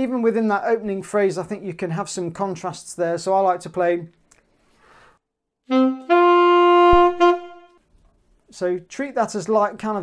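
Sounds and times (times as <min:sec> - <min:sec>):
alto saxophone playing: 0:05.6 - 0:07.8.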